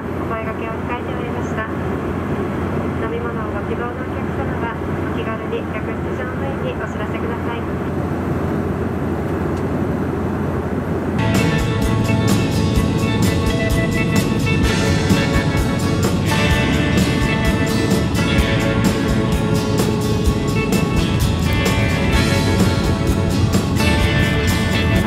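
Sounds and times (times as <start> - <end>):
announcement over pa: 0.0 - 1.9, 2.8 - 7.9
jet cabin drone: 0.0 - 25.0
music: 11.2 - 25.0.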